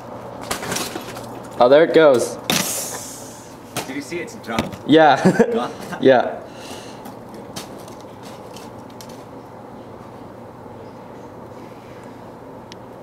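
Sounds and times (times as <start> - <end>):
outdoor hum and hiss: 0.0 - 13.0.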